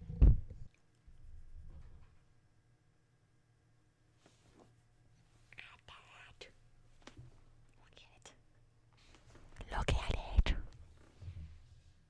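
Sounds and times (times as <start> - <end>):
woman whispering: 5.5 - 6.6, 7.8 - 8.5, 9.6 - 10.8.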